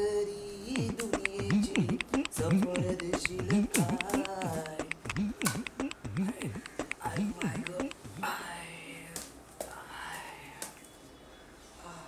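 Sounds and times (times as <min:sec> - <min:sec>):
short clicks: 0:00.8 - 0:08.0.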